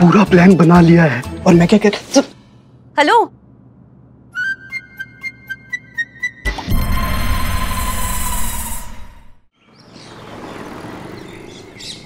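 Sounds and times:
dramatic sound effect hit: 6.5 - 9.5.

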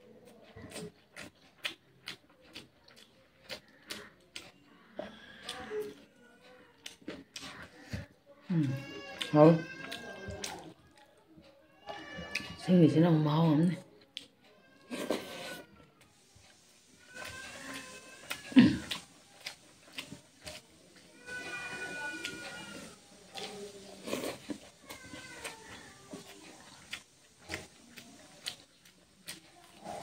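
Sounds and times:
cat meowing: 17.1 - 18.5, 21.2 - 23.5.

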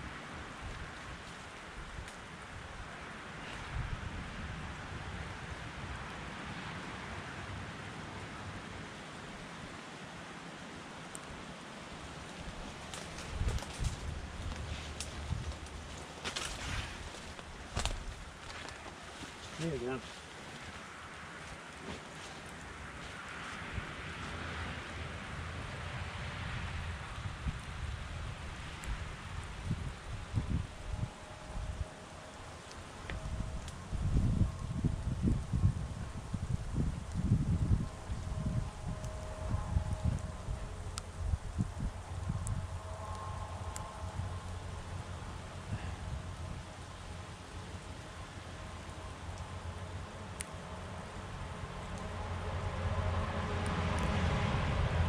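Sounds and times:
wind rumbling on microphone: 0.0 - 9.6, 11.2 - 55.0
road traffic rumble: 0.0 - 55.0
vehicle approaching: 11.9 - 34.0, 37.9 - 55.0.

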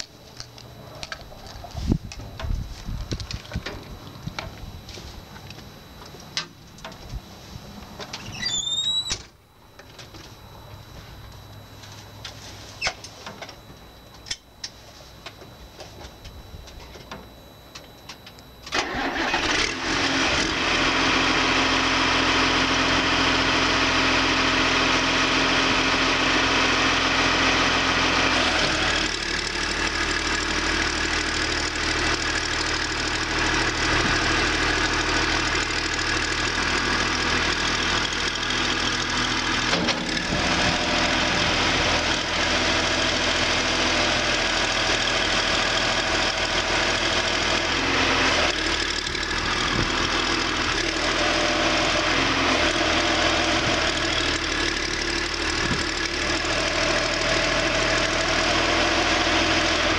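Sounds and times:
diesel engine cranking and running: 18.0 - 59.9.

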